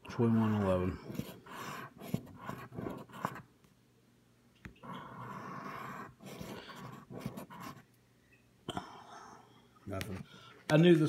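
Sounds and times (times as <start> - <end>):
scratching lottery ticket coating: 0.2 - 3.5.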